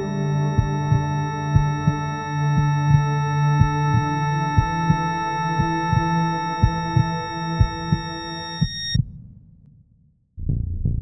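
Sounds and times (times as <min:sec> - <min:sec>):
sustained synthesizer chord: 0:00.0 - 0:09.0
low rumble: 0:00.0 - 0:09.1, 0:10.4 - 0:11.0
heartbeat thumps: 0:00.0 - 0:09.7, 0:10.4 - 0:11.0.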